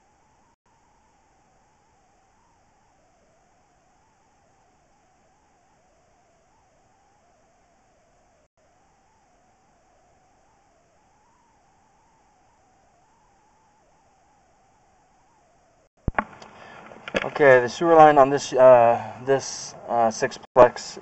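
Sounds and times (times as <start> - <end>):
faint hiss with wavering whine: 0.0 - 21.0.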